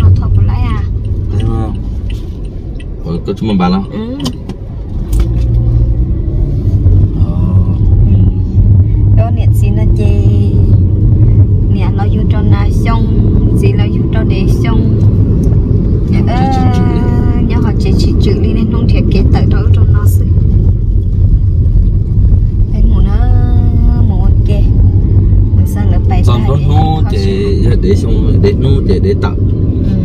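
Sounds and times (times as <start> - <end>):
people talking: 0.0 - 1.8, 3.0 - 4.4, 7.2 - 8.4, 9.2 - 10.7, 11.7 - 15.0, 16.1 - 20.4, 22.7 - 24.8, 25.6 - 30.0
car road and engine rumble: 0.0 - 30.0.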